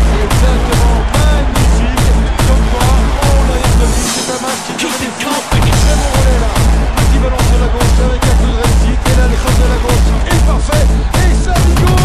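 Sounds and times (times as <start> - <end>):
music with heavy bass beat: 0.0 - 12.0.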